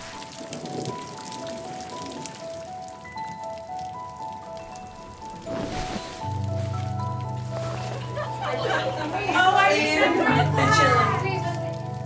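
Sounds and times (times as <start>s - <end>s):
gentle slow melody: 0.0s - 12.0s
rain pattering: 0.0s - 12.0s
rushing noise: 4.6s - 7.1s.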